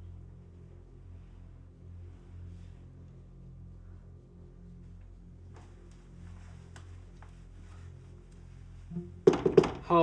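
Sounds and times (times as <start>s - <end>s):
knuckles knocking on door: 9.2s - 9.9s.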